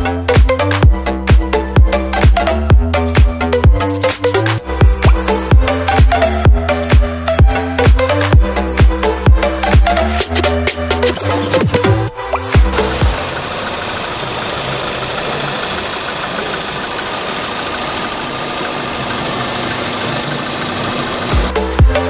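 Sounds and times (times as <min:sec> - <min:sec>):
electronic dance music: 0:12.6 - 0:21.5
car engine idling: 0:12.7 - 0:21.5.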